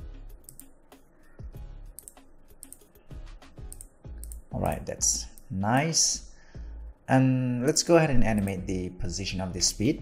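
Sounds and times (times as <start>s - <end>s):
quiet background music: 0.0s - 10.0s
mouse and keyboard clicks: 1.9s - 2.9s.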